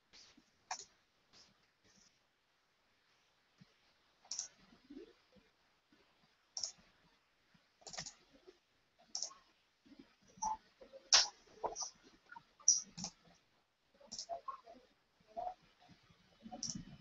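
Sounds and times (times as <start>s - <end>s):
faint computer clicks: 0.1s - 2.1s, 3.6s - 4.8s, 6.6s - 6.9s, 7.8s - 8.3s, 9.0s - 13.4s, 14.1s - 14.8s, 15.8s - 17.0s.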